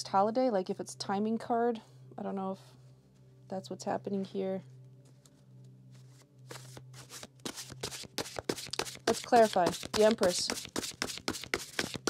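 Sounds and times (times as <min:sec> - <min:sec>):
cards being shuffled: 0:06.0 - 0:12.0.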